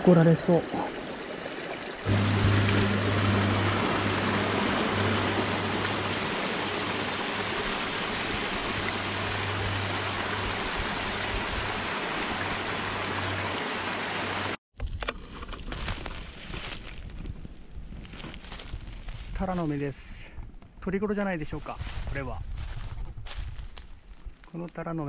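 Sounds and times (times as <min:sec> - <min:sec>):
water splashing over rocks: 0:00.0 - 0:14.6
low steady hum: 0:02.1 - 0:11.9.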